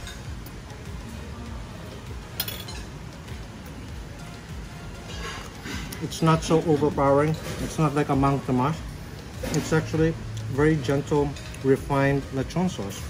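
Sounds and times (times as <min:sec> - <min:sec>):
faint background music: 0:00.0 - 0:13.0
cutlery clinking on plate: 0:02.4 - 0:03.0.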